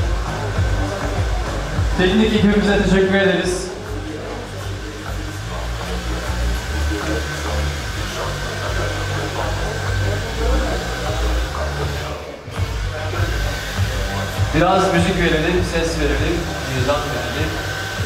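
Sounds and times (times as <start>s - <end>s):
hair dryer blowing: 0.0s - 18.0s.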